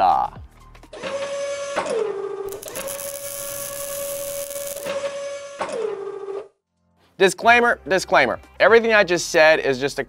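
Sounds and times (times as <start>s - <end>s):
bright hiss of tool on metal: 2.5s - 4.9s
robot arm servo whine: 2.5s - 5.7s.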